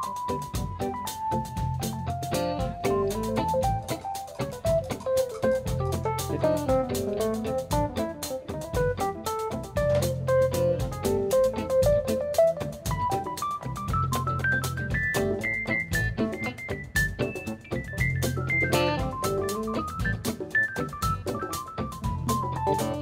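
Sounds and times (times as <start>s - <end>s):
live rock band: 0.0s - 23.0s
electric guitar fast run: 0.3s - 23.0s.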